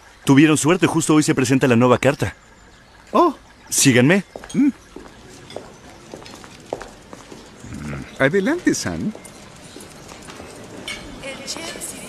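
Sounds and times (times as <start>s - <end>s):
footsteps on hard floor: 4.4s - 7.5s.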